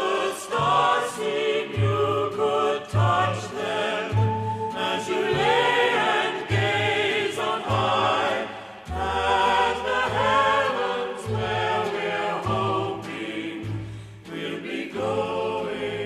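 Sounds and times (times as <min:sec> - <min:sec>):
choir singing: 0:00.0 - 0:16.0
instrumental accompaniment: 0:00.6 - 0:15.9.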